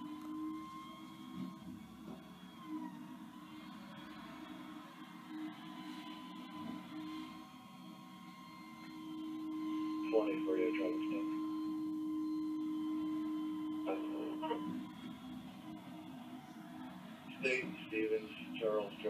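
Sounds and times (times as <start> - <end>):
hydraulic whine: 0.0 - 19.0.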